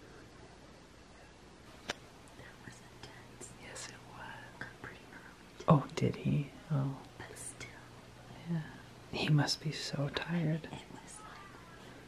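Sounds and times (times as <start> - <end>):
person whispering: 2.4 - 12.0.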